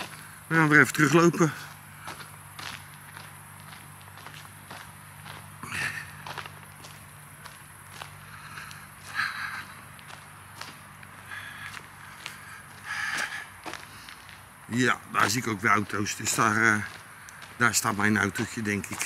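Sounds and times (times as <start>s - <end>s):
footsteps walking: 0.0s - 19.0s
low steady hum: 0.0s - 19.0s.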